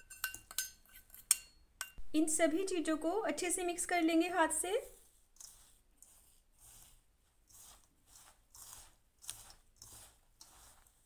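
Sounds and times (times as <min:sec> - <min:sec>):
hand rubbing dry mixture in bowl: 0:02.2 - 0:11.0.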